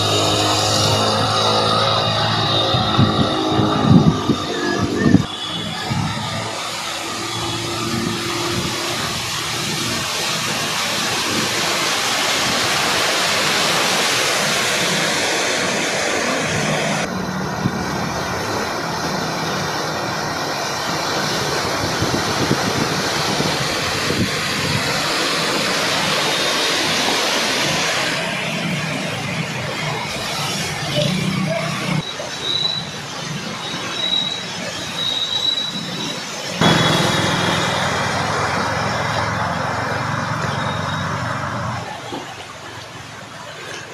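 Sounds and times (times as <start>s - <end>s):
engine hum: 0.0s - 32.4s, 35.9s - 43.9s
floodwater churning and splashing: 0.0s - 43.9s.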